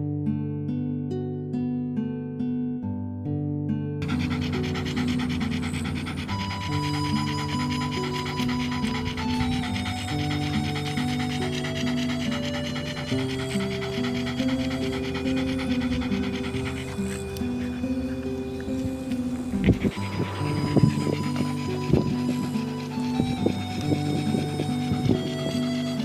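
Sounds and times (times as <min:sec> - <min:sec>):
dog panting heavily: 0:04.0 - 0:26.0
piano music: 0:04.0 - 0:26.0.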